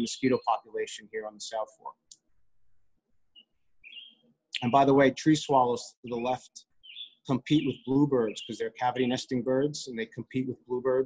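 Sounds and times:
faint bird chirps: 2.5s - 4.8s, 6.1s - 8.8s.

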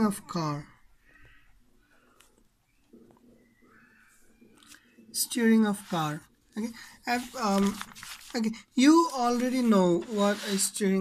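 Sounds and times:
pen scratching on paper: 9.4s - 10.9s.

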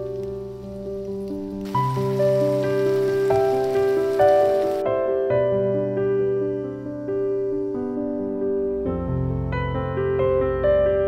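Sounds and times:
food sizzling in a pan: 0.0s - 4.9s
soft piano music: 0.0s - 11.0s.

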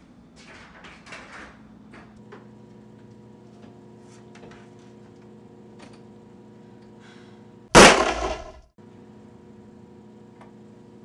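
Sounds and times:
loud gunshot: 7.8s - 8.6s.

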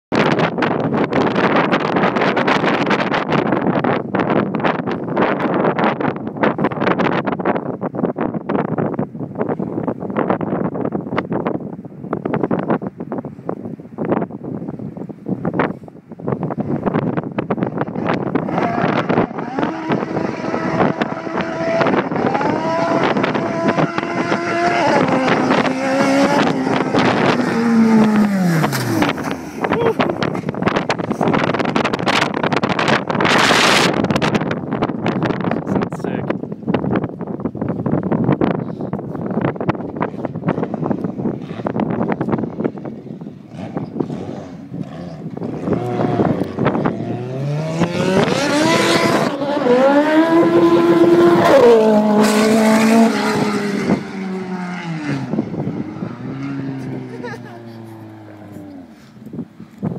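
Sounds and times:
wind buffeting microphone: 0.1s - 59.9s
car engine accelerating: 18.0s - 34.5s, 43.4s - 59.2s.

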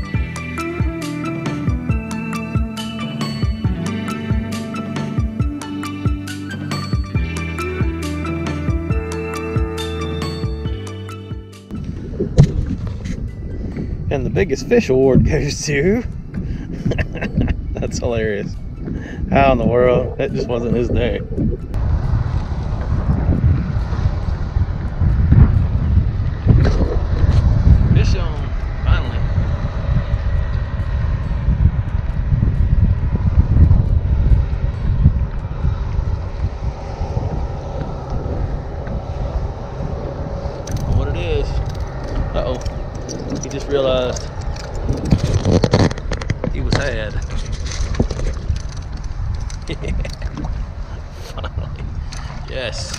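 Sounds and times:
wind buffeting microphone: 11.7s - 52.9s.

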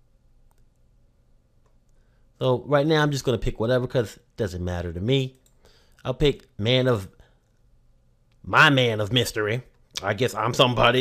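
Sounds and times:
faint clicks: 0.4s - 0.9s.

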